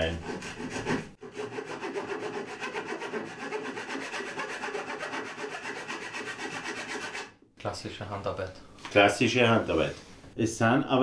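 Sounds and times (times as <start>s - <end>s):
hand saw cutting wood: 0.0s - 7.3s.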